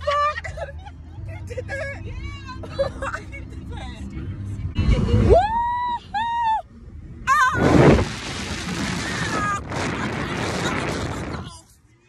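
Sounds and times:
car road rumble: 0.0s - 11.8s.

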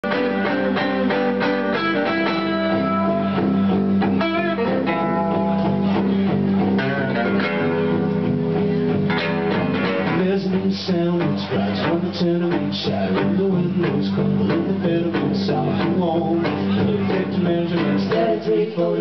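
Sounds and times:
acoustic and electric guitars playing: 0.0s - 19.0s.

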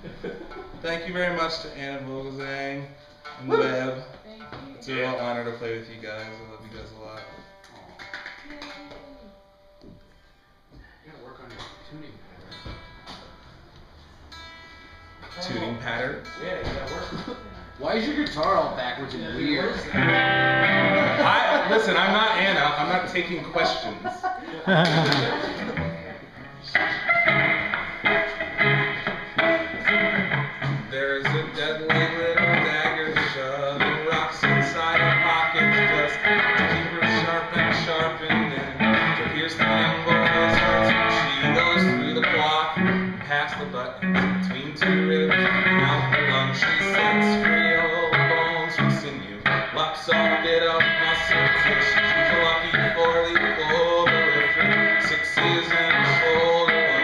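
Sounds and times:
electric guitar picking notes: 1.3s - 10.2s, 11.4s - 23.6s, 24.7s - 57.0s.

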